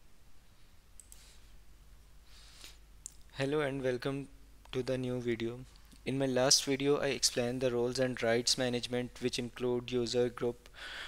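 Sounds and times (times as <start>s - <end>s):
computer mouse click: 1.0s - 1.2s.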